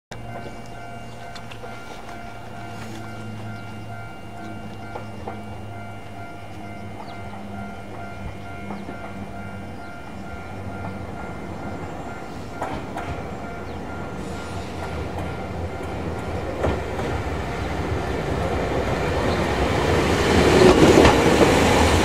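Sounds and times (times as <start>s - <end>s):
electric train humming: 0.1s - 22.0s.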